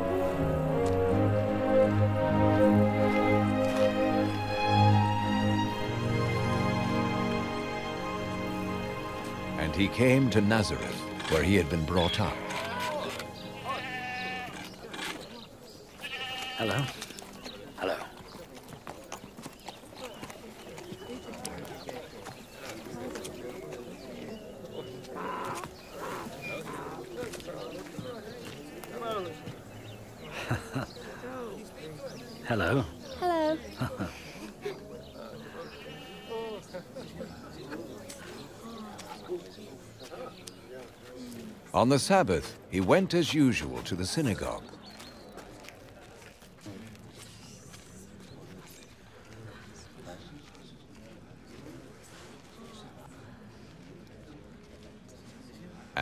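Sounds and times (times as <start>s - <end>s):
soft background music: 0.0s - 14.7s
distant indistinct voices: 2.3s - 41.8s
goat bleating: 12.4s - 14.7s, 16.0s - 16.9s, 35.7s - 36.6s.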